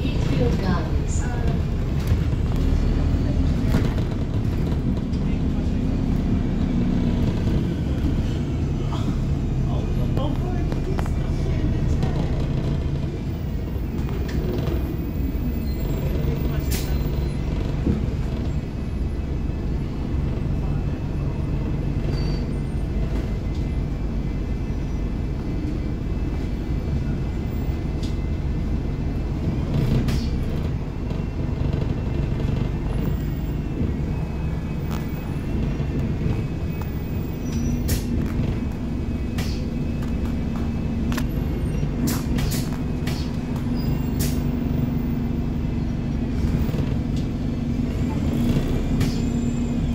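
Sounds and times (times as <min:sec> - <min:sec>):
bus engine and road rumble: 0:00.0 - 0:49.9.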